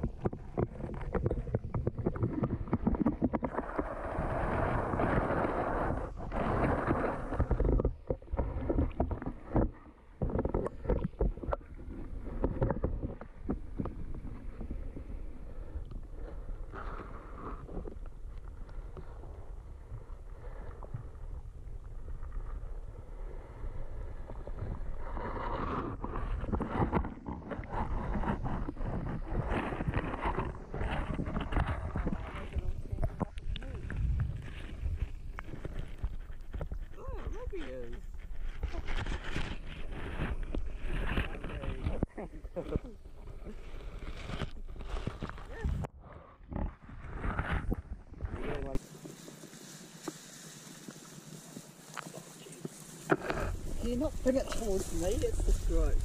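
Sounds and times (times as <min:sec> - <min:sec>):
muffled underwater rumble: 0:00.0 - 0:56.0.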